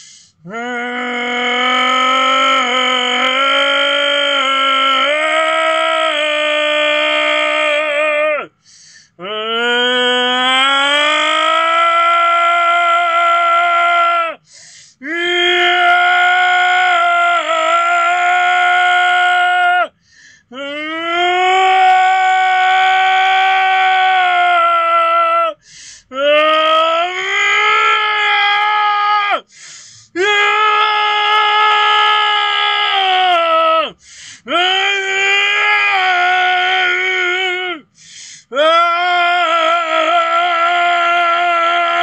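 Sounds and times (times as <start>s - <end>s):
quick breath: 0.0s - 0.4s, 8.6s - 9.2s, 14.4s - 15.0s, 20.0s - 20.5s, 25.6s - 26.1s, 29.5s - 30.2s, 34.0s - 34.5s, 37.9s - 38.5s
man's long strained cry: 0.4s - 8.5s, 9.2s - 14.4s, 15.0s - 19.9s, 20.5s - 42.0s.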